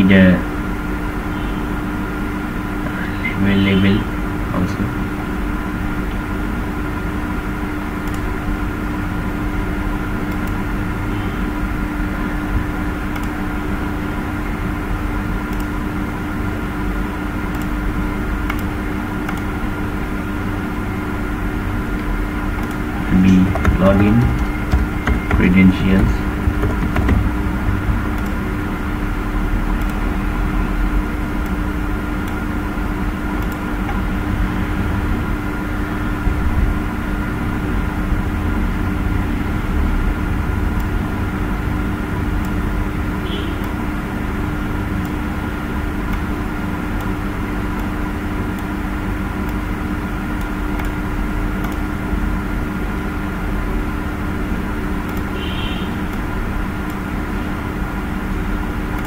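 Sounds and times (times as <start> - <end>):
steady mechanical hum: 0.0 - 59.0.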